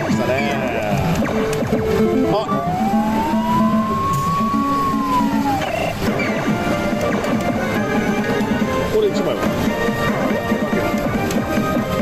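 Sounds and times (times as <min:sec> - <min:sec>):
rising and falling whistle: 0:02.5 - 0:05.9.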